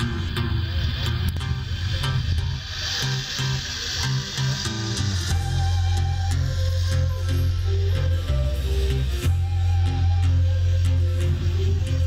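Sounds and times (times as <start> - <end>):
bass line: 0.0 - 12.0.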